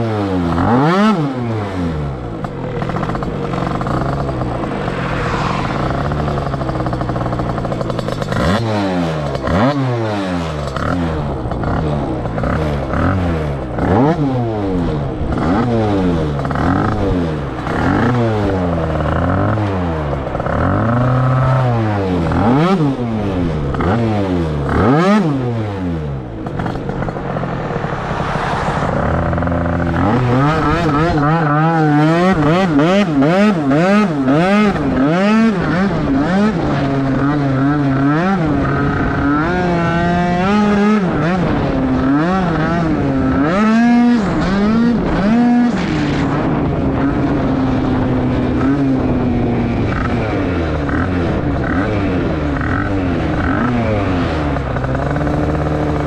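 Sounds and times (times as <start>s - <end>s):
two-stroke scooter engine revving: 0.0s - 56.0s.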